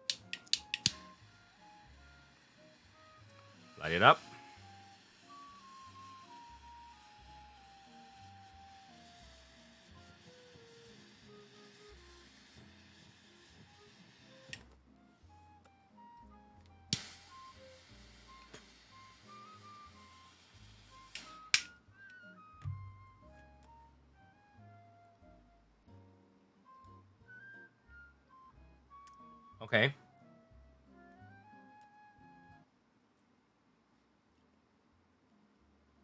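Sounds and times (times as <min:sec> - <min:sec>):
sharp clicks: 0:00.0 - 0:01.0
torch lighter flame hissing: 0:00.0 - 0:22.2
soft flute-like background music: 0:00.0 - 0:32.8
low thump: 0:22.6 - 0:23.0.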